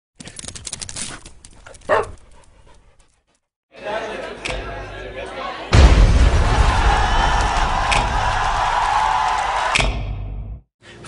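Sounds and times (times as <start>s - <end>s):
dog panting: 1.9s - 3.4s.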